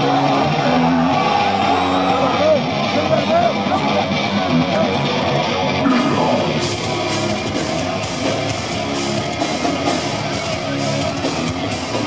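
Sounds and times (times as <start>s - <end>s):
shouted vocals: 0.0s - 2.7s
distorted electric guitars: 0.0s - 12.0s
pitch-bending guitar wails: 5.8s - 8.5s.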